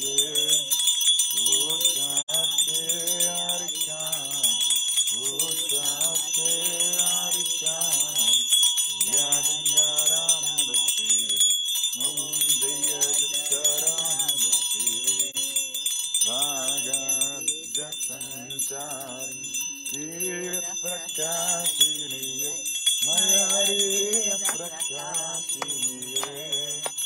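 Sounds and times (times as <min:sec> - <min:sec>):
small bells ringing: 0:00.0 - 0:27.0
voices chanting in unison: 0:00.0 - 0:27.0.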